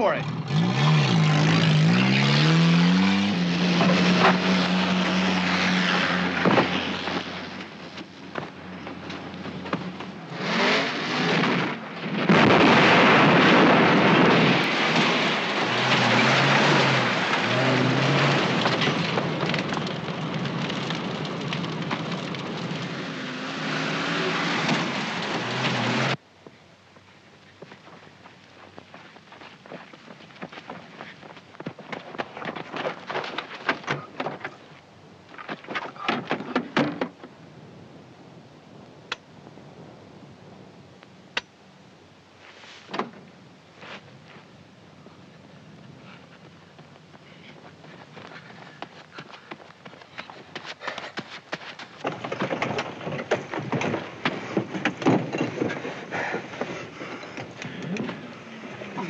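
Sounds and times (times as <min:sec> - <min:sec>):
loud engine rising in pitch: 0:00.0 - 0:06.4.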